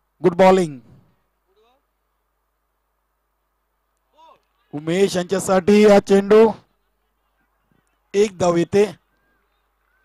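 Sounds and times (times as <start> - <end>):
man commentating: 4.1 - 6.6, 8.1 - 9.0.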